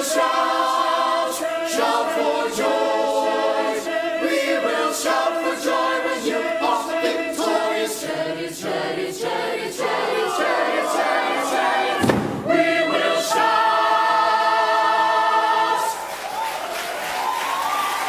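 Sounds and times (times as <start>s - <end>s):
mixed choir singing: 0.0s - 18.0s
thump: 12.0s - 12.5s.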